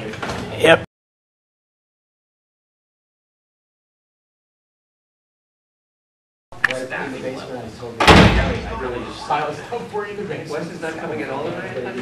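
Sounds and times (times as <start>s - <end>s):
door shutting with thud: 8.0s - 8.7s.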